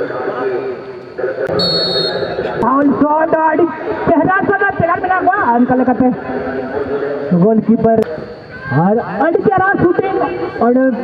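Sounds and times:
referee's whistle blast: 1.5s - 2.5s.

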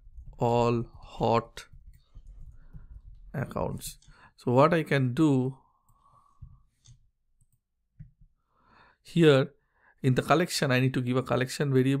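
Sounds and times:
soft breath: 1.9s - 3.3s, 5.6s - 7.0s, 8.4s - 9.0s.

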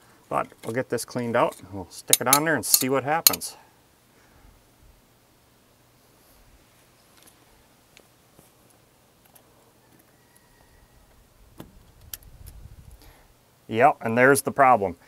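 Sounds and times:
sharp metal clicks: 2.1s - 3.5s.

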